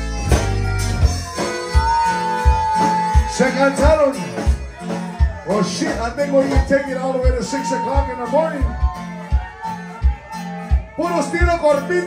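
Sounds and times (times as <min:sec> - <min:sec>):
electric bass line: 0:00.0 - 0:07.4
live band playing: 0:00.0 - 0:12.0.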